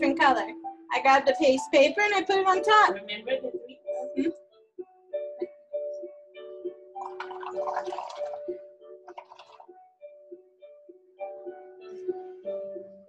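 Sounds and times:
background music with held notes: 0.0s - 13.0s
air bubbling through soapy paint: 7.0s - 8.5s, 9.1s - 9.7s.

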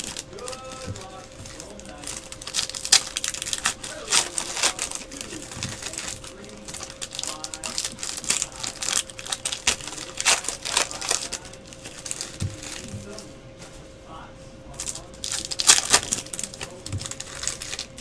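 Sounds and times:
foil wrappers crinkling and tearing: 0.0s - 13.3s, 14.7s - 18.0s.

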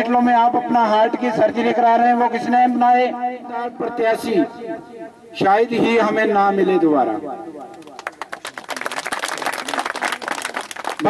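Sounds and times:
crowd applauding: 7.7s - 11.0s.

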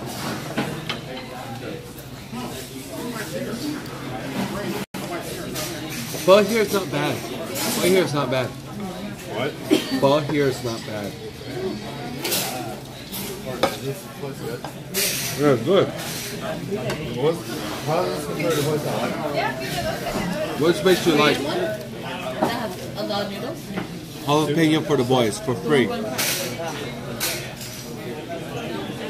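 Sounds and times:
faint restaurant chatter: 0.0s - 29.0s
murmur of diners talking: 0.0s - 29.0s
utensils clinking on dishes: 4.3s - 11.1s, 12.1s - 20.0s, 26.0s - 29.0s.

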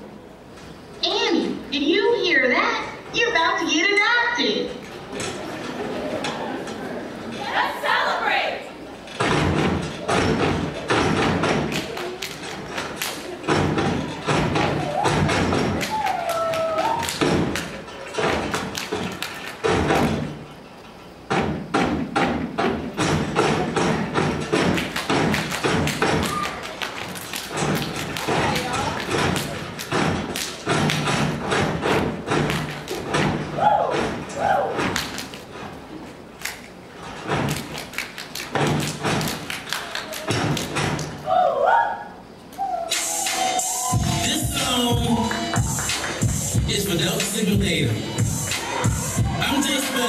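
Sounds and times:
rhythmic stomping on a stage: 9.2s - 20.5s, 21.2s - 35.7s, 37.2s - 41.2s, 43.9s - 50.0s.

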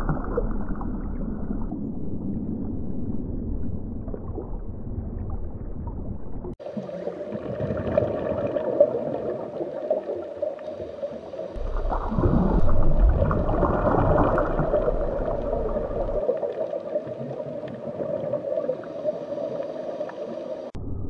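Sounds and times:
water bubbling and gurgling: 0.0s - 20.9s
underwater hum: 0.0s - 21.0s.

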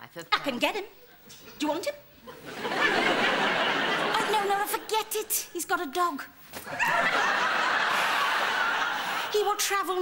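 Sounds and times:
studio audience laughing: 2.3s - 4.9s, 6.6s - 9.5s.

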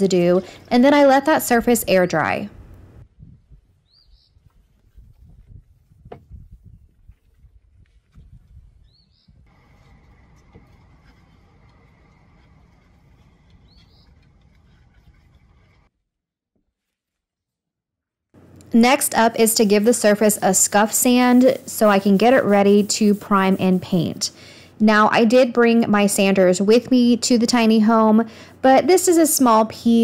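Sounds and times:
small bird chirping: 3.8s - 4.4s, 8.8s - 9.4s, 13.6s - 14.3s.

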